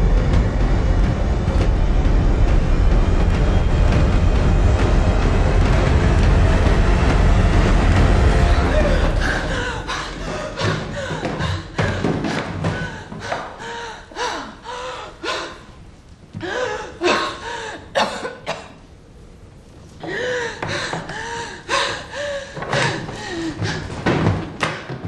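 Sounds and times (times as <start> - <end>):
woman gasping and groaning: 8.4 - 15.8, 16.4 - 18.0, 20.0 - 24.2.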